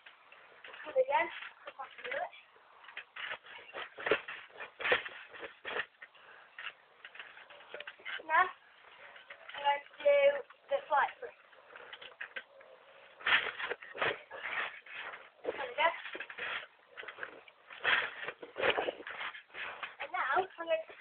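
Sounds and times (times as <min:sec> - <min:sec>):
trampoline bouncing thumps: 0:00.0 - 0:12.4, 0:13.0 - 0:21.0.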